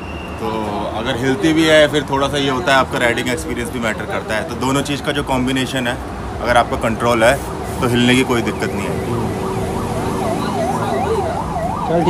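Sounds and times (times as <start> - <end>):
electronic siren wailing: 6.7 - 12.0.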